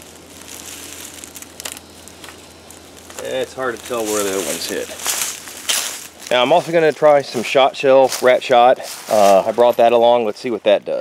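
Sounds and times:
dry leaves rustling: 0.0 - 11.0.

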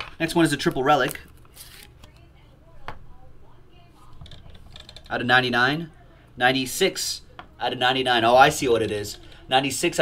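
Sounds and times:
cards rustling and sliding: 0.0 - 2.1.

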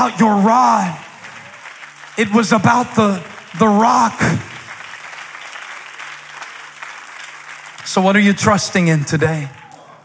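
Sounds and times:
congregation applauding: 0.0 - 10.0.

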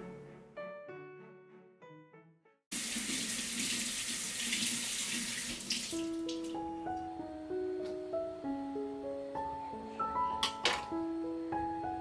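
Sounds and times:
faucet water running into sink: 2.7 - 6.6
plucked background music: 5.9 - 12.0.

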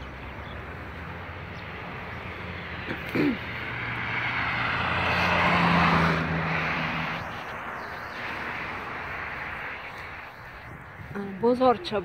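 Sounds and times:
car driving past: 0.6 - 10.9.

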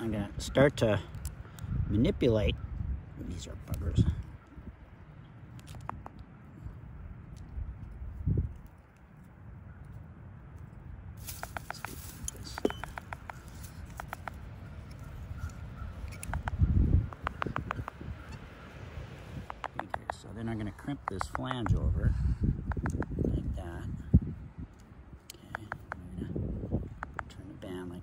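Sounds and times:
quick sharp clicks: 11.4 - 14.4, 16.0 - 18.0, 19.4 - 20.2.

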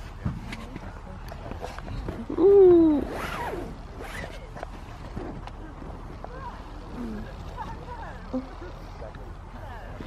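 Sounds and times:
rasping rustle: 3.0 - 5.4.

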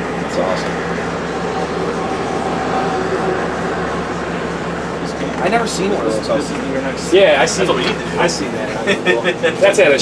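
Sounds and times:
machinery humming: 0.0 - 10.0.

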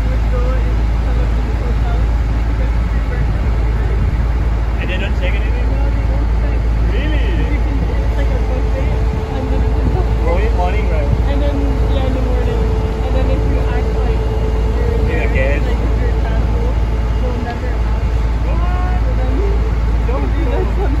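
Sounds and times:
boat engine rumbling: 0.0 - 21.0
indistinct voices chattering: 0.0 - 21.0.

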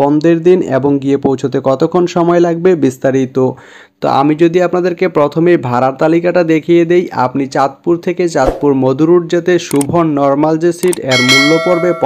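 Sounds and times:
people talking: 0.0 - 12.0
bright bell ding: 10.9 - 12.0.

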